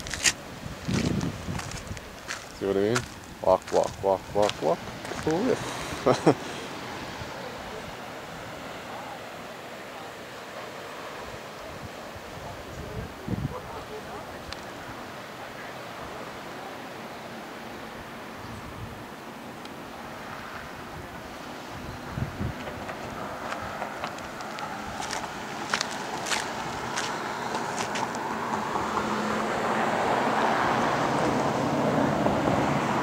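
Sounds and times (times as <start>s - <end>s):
wind on microphone: 0.0s - 2.4s, 11.6s - 14.4s, 18.4s - 19.1s, 20.6s - 23.9s
passing vehicle road noise: 0.0s - 18.4s, 19.3s - 33.0s.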